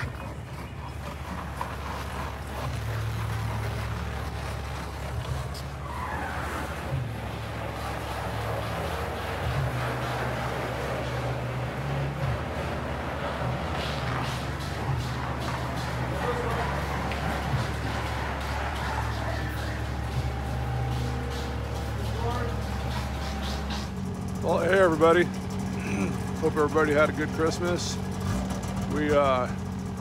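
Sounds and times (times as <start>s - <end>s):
diesel engine revving: 0.0s - 30.0s.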